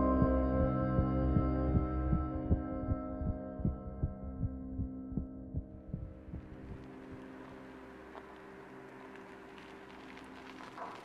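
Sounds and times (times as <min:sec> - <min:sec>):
ambient drone: 0:00.0 - 0:11.0
heartbeat-like thumping: 0:00.2 - 0:07.3.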